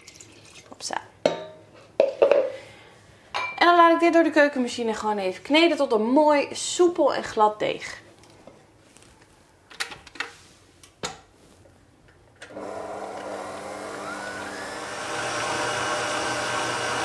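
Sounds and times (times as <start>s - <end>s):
stand mixer motor running: 12.5s - 17.0s.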